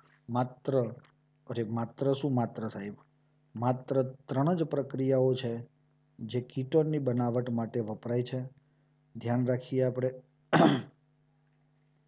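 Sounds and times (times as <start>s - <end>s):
man clearing throat: 10.5s - 11.0s.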